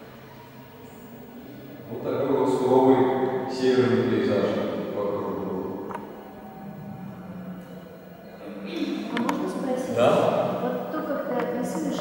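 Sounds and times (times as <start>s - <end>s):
low steady hum: 0.0s - 12.0s
voice echo in hall: 2.0s - 12.0s.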